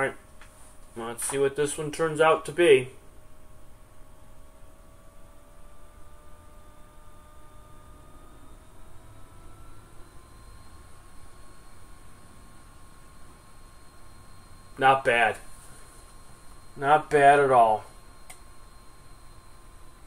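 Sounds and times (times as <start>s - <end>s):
faint drifting whining tones: 0.0s - 20.0s
low hum: 0.0s - 20.0s.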